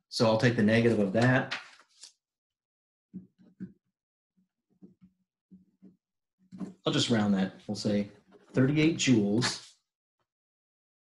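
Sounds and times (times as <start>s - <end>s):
man speaking: 0.1s - 1.5s, 6.9s - 9.7s.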